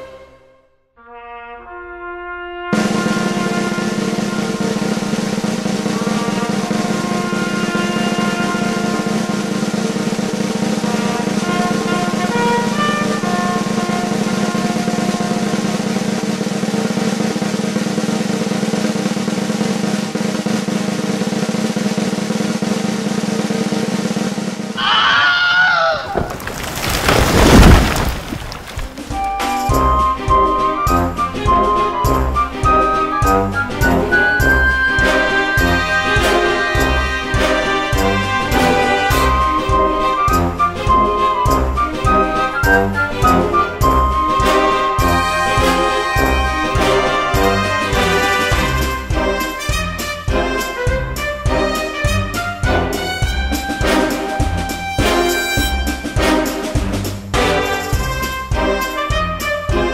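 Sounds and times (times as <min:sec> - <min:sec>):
snare drum roll: 0:02.8 - 0:23.3
loud crash: 0:26.0 - 0:29.6.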